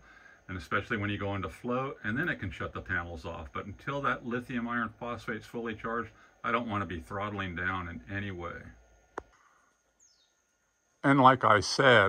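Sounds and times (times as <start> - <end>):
high bird chirp: 10.0 - 10.4.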